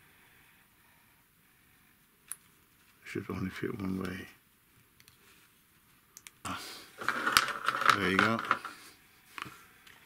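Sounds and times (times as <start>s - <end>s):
plastic parts clicking and scraping: 7.0s - 8.8s.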